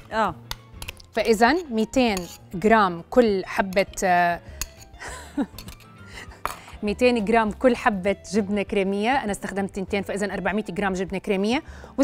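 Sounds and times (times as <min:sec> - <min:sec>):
metal spoon scraping a bowl: 0:00.5 - 0:02.8, 0:03.4 - 0:06.1.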